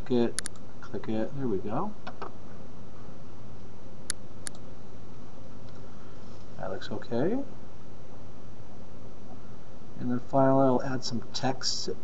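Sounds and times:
steady background hiss: 0:00.0 - 0:12.0
computer mouse clicks: 0:00.4 - 0:00.6, 0:04.1 - 0:04.6.

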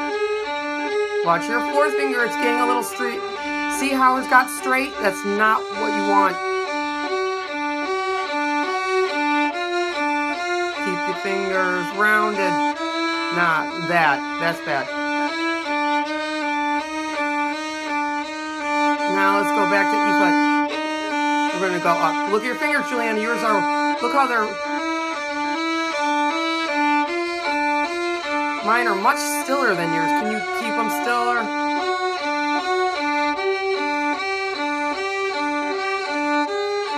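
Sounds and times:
violin and viola bowing: 0:00.0 - 0:36.9.

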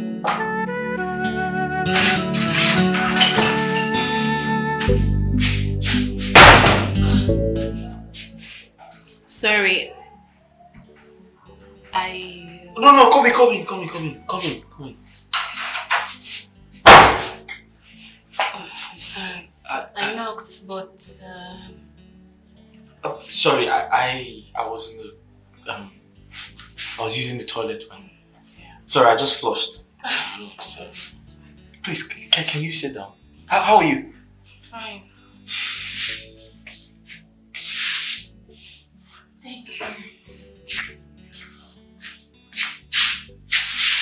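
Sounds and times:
soft background music: 0:00.0 - 0:44.0
wooden door banging shut: 0:06.4 - 0:07.0.

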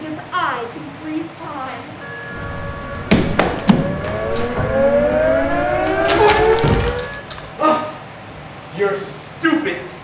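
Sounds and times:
siren-like wail rising: 0:02.3 - 0:07.4.

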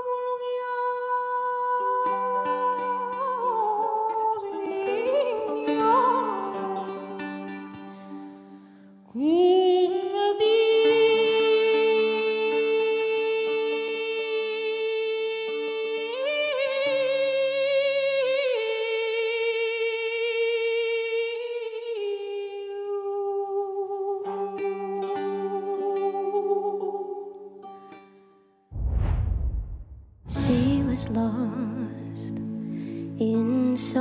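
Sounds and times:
woman singing long held notes: 0:00.0 - 0:07.2, 0:30.3 - 0:32.4
plucked string notes: 0:01.8 - 0:08.6, 0:30.3 - 0:34.0.

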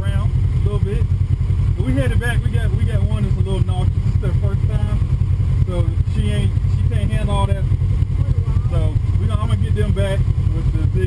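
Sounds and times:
vehicle engine idling: 0:00.0 - 0:11.0.

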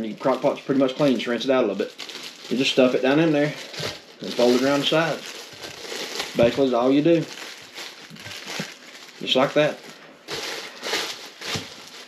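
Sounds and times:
plastic liner crinkling: 0:00.0 - 0:12.0.

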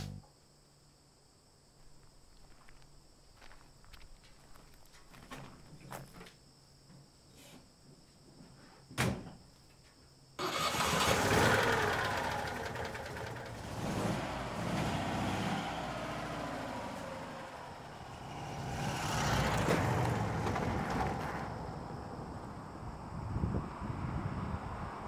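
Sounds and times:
car engine starting and revving: 0:10.4 - 0:21.9.

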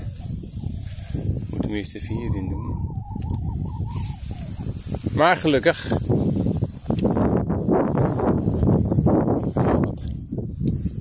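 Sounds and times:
low rumbling wind: 0:00.0 - 0:11.0
microphone handling noise: 0:00.0 - 0:11.0
faint wavering tone: 0:02.0 - 0:04.8.

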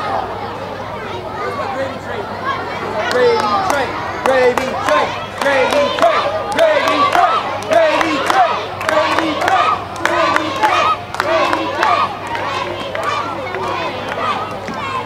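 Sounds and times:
players shouting: 0:00.0 - 0:15.0.

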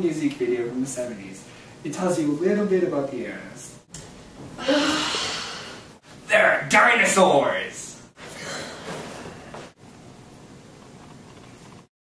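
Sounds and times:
person sighing: 0:04.6 - 0:05.8.

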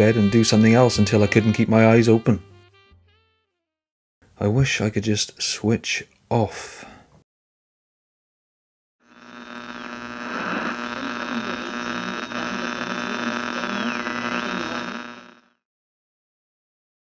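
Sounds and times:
thin high whine: 0:09.1 - 0:15.5
buzzing electrical hum with static: 0:09.1 - 0:15.6.

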